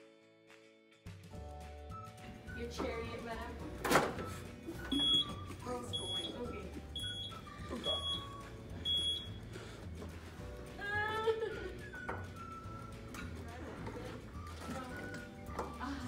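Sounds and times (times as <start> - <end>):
background music: 0.0 - 16.0
reverse warning beeps: 4.9 - 9.4.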